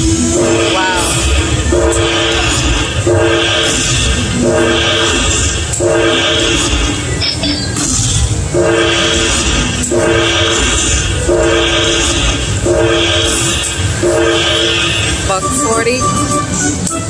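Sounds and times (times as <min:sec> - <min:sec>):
steady low rumble: 0:00.0 - 0:16.6
slot machine chord with shimmer: 0:00.1 - 0:06.8, 0:08.5 - 0:16.8.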